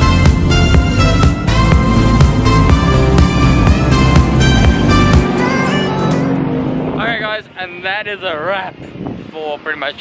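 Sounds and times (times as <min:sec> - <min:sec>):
background music held note: 0:00.4 - 0:07.0
faint vehicle noise: 0:01.4 - 0:10.0
man talking: 0:07.0 - 0:10.0.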